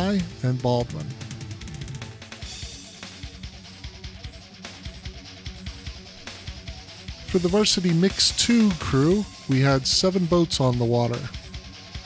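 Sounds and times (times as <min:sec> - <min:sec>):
music with drum beat and guitar: 0:00.0 - 0:12.0.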